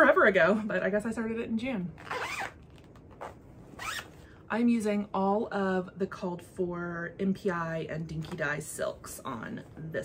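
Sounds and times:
zipper being pulled open: 2.0s - 4.2s.

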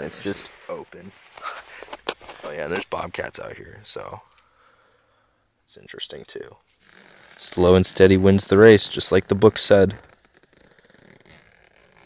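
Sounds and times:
zipper slider being worked: 6.7s - 12.0s.

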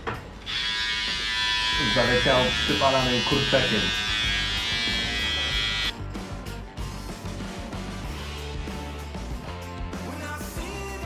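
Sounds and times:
background music: 0.0s - 11.0s
electric hair clipper buzzing: 0.4s - 5.9s.

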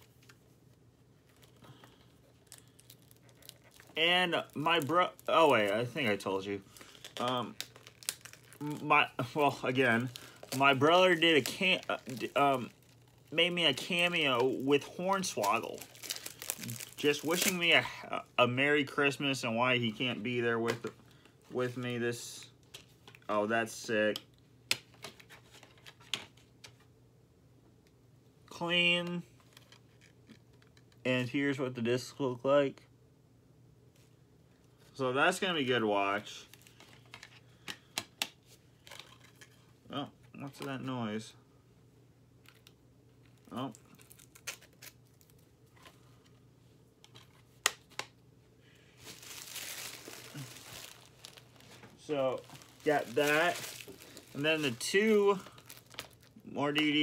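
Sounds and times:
plastic wrapping crinkling: 0.0s - 17.9s, 42.4s - 46.1s, 48.8s - 57.0s.

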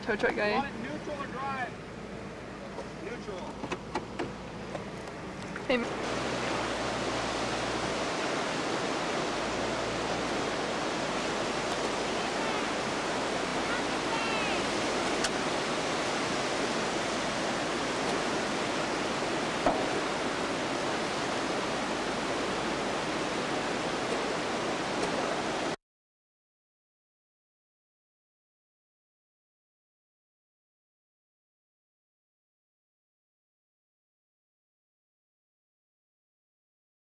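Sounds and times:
ocean surf washing in: 4.3s - 25.8s
faint voice: 13.6s - 14.7s.

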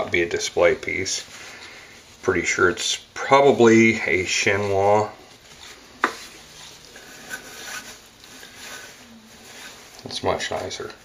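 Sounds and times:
cloth rustling: 0.0s - 11.0s.

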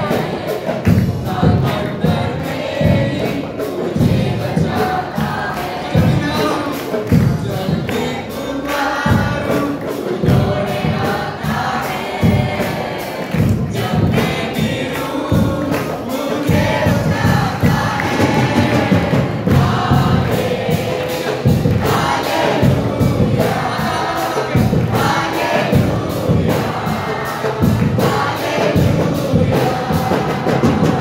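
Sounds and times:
congregation singing: 0.0s - 31.0s
steady beat: 0.0s - 31.0s
worship singers singing: 0.0s - 31.0s.

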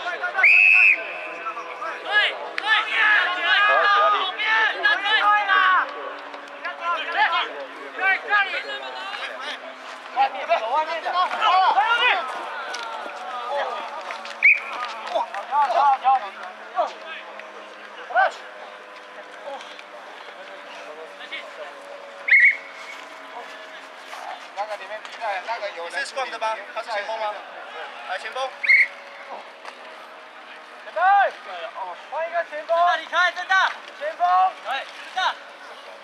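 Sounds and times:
players and spectators shouting: 0.0s - 36.0s
referee's whistle blasts: 0.4s - 1.4s, 14.4s - 14.7s, 22.3s - 22.7s, 28.6s - 29.0s.

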